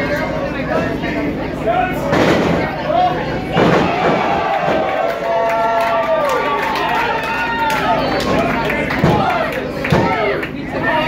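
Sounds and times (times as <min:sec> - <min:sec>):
crowd shouting: 0:02.6 - 0:11.0.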